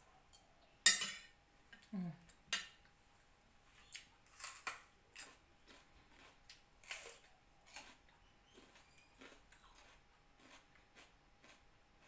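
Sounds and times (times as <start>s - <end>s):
food crackling while eating: 3.8s - 12.0s.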